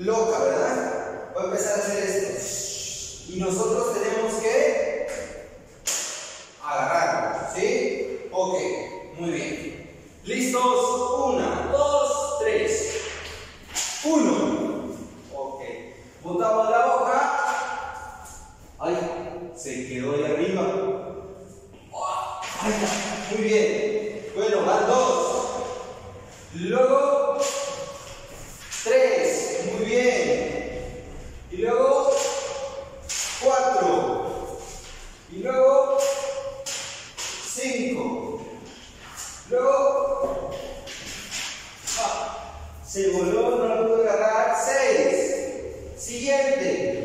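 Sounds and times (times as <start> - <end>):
man speaking: 0.0 - 5.6, 6.6 - 47.0.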